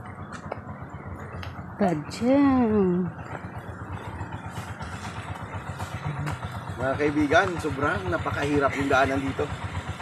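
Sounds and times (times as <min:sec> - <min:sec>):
small engine idling: 0:00.0 - 0:10.0.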